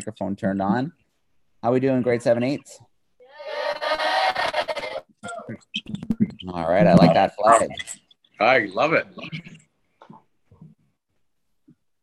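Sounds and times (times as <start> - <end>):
students cheering and shouting: 3.4 - 5.0.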